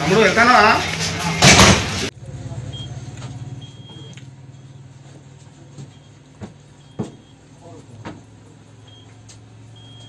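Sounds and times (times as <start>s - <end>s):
thermometer beeping: 2.5s - 10.0s.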